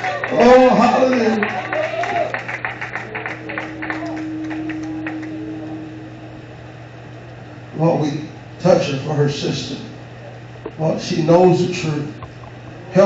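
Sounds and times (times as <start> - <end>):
rhythmic hand clapping: 0.0 - 6.1
constant low hum: 0.0 - 13.0
steady held note: 2.8 - 9.1.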